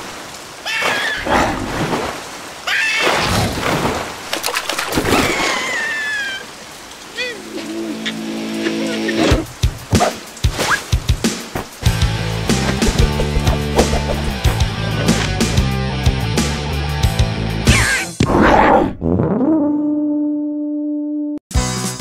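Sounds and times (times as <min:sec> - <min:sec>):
rain falling: 0:00.0 - 0:16.8
background music: 0:07.4 - 0:10.4, 0:11.0 - 0:17.7
pulsing beat: 0:11.9 - 0:15.4.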